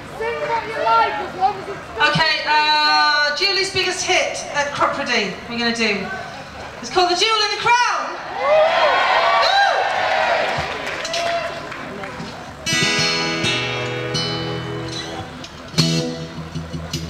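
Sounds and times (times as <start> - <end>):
voices: 0.0 - 8.3
acoustic guitar chord strummed: 12.6 - 17.0.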